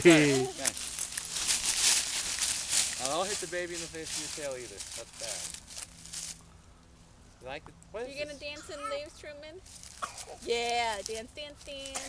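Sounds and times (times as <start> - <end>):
dry leaves crunching underfoot: 0.0 - 7.2, 9.6 - 12.0.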